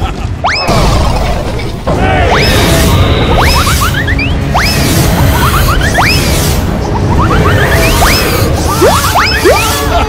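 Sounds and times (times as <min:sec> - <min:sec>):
music: 0:00.3 - 0:10.0.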